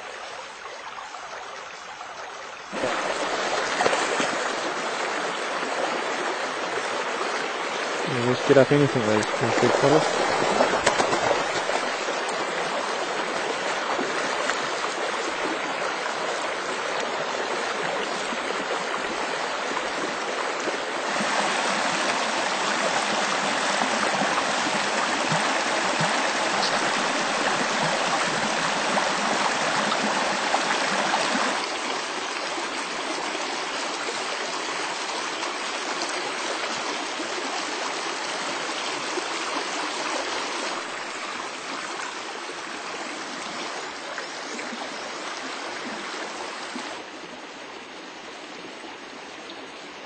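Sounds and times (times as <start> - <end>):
river water flowing: 0.0 - 50.0.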